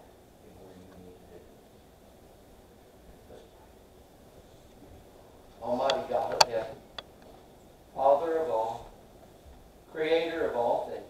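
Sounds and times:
sharp click: 0:05.8 - 0:07.2.

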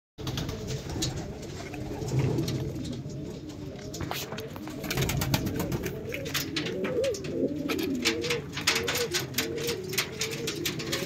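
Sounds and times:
pigeons cooing: 0:00.2 - 0:11.0.

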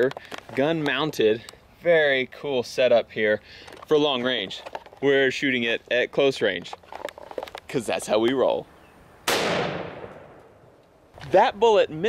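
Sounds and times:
rifle shot: 0:09.2 - 0:10.6.

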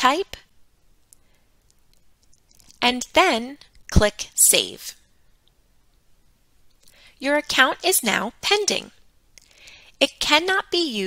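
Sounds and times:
woman speaking: 0:00.0 - 0:00.4, 0:02.8 - 0:05.0, 0:07.2 - 0:09.0, 0:10.0 - 0:11.0.

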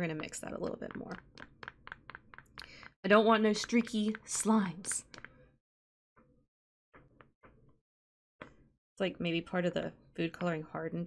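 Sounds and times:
spoon stirring slime in bowl: 0:00.8 - 0:05.4.

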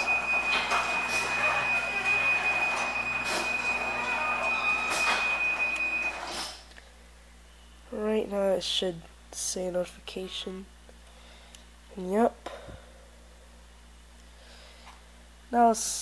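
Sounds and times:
continuous high tone: 0:00.0 - 0:06.4
garage door opener running: 0:00.0 - 0:06.6.

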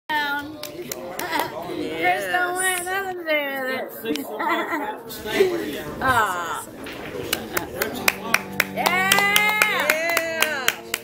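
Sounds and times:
sharp hand claps: 0:07.2 - 0:11.0.

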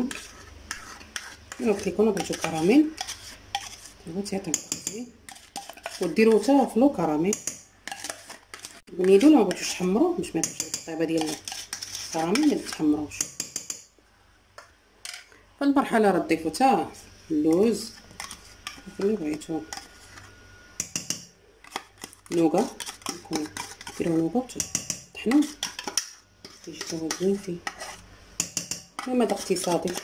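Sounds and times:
metal spoon scraping plastic pots: 0:00.0 - 0:13.8, 0:17.5 - 0:30.0
spoon clinking on steel bowl: 0:20.8 - 0:21.3, 0:28.4 - 0:30.0.

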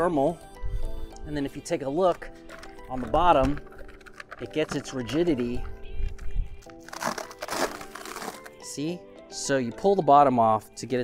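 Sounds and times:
background music: 0:00.0 - 0:11.0
foil backpack crinkling: 0:02.3 - 0:05.7, 0:06.6 - 0:08.6.

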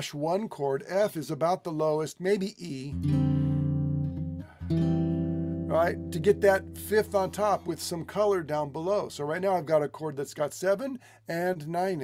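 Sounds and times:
guitar chords ringing: 0:02.9 - 0:09.3.

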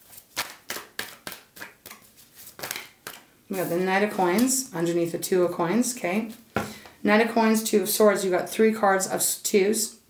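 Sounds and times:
cards being shuffled: 0:00.0 - 0:04.5.

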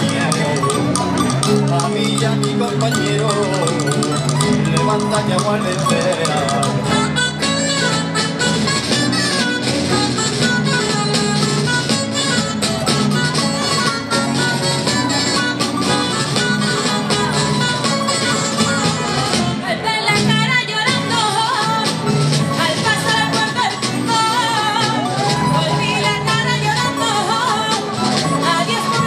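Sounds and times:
plucked string ensemble: 0:00.0 - 0:29.0.

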